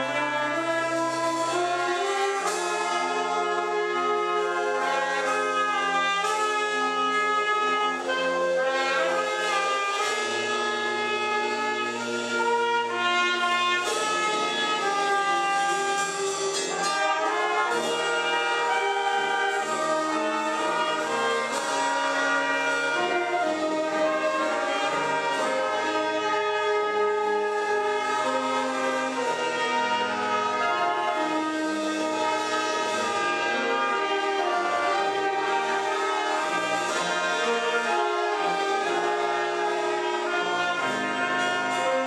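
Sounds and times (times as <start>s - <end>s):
wind band playing chords: 0.0s - 42.0s.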